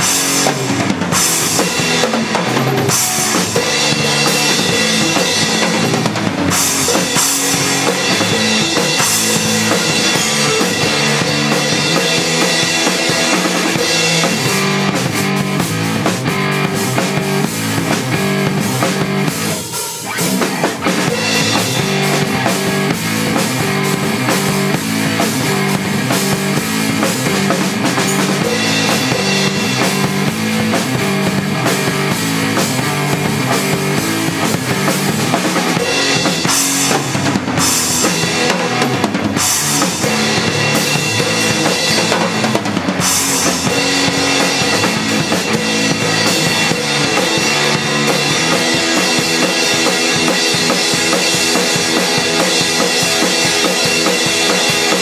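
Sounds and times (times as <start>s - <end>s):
amplified guitar: 0.0s - 55.0s
drum kit played hard: 0.0s - 55.0s
rock band jamming: 0.0s - 55.0s.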